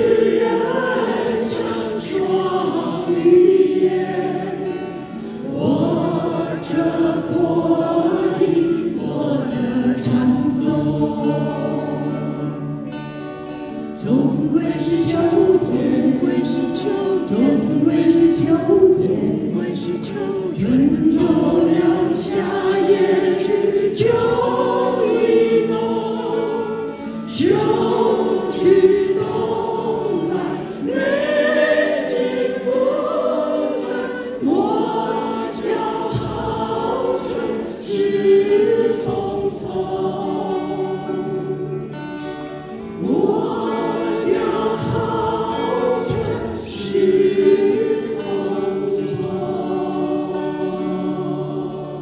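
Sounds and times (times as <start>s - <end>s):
acoustic guitars: 0.0s - 52.0s
vocal ensemble singing in harmony: 0.0s - 52.0s.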